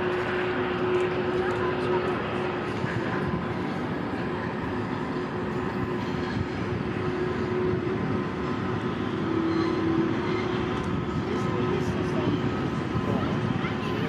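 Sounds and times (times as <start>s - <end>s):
freight train rumbling by: 0.0s - 14.0s
steady humming tones: 0.0s - 14.0s.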